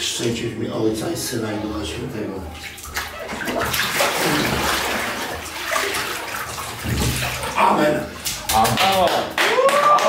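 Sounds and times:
bathwater sloshing and splashing: 0.0s - 9.4s.

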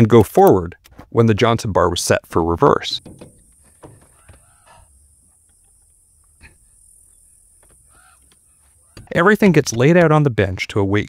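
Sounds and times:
steady high hiss: 1.8s - 11.0s
faint chirping calls: 2.9s - 9.6s.

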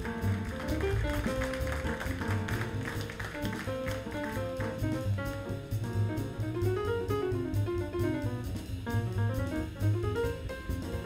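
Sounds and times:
drums with ride cymbal: 0.0s - 11.0s
piano: 0.0s - 11.0s
walking double bass: 0.0s - 11.0s.

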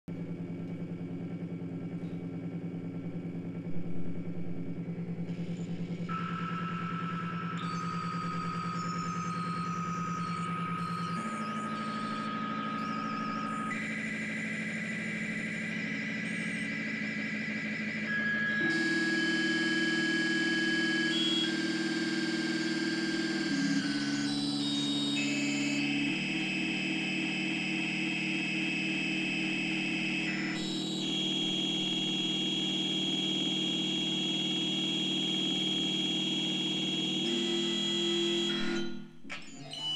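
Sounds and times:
electronic drones and tones: 0.4s - 39.9s
warbling glitchy high patterns: 3.8s - 39.9s.

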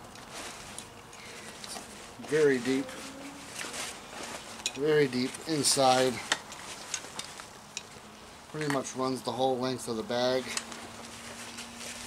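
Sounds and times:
fabric rustling: 0.2s - 7.5s, 10.7s - 12.0s.

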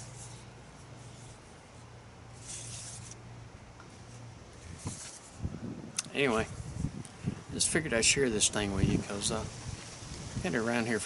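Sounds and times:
soft rustling: 3.8s - 5.4s.

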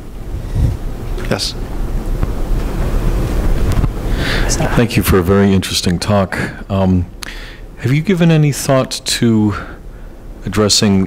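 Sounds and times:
microphone handling rumble: 0.0s - 5.3s.

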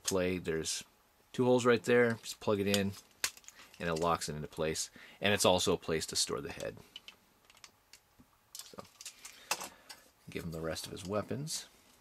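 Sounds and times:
plastic toy parts clicking: 6.6s - 8.0s.

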